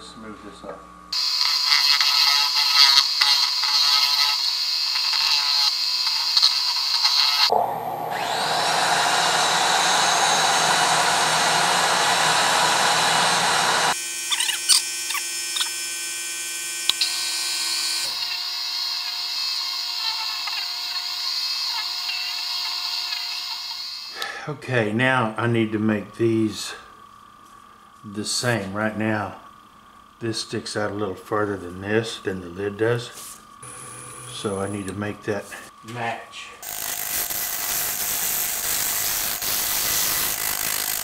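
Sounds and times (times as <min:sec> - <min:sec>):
lathe motor whine: 0:01.2 - 0:24.2, 0:33.6 - 0:35.0
abrasive hissing on spinning wood: 0:36.6 - 0:41.0.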